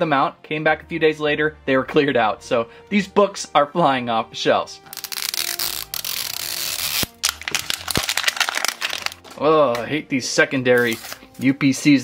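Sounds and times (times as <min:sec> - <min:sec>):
plastic crinkling: 0:04.9 - 0:09.5
plastic wrapper ripping: 0:04.9 - 0:09.8, 0:10.8 - 0:11.3.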